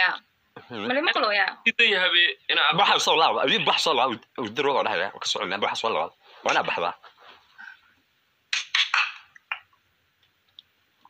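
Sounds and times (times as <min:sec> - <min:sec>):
call line background noise: 0:00.0 - 0:11.0
person speaking on video call: 0:00.6 - 0:07.4.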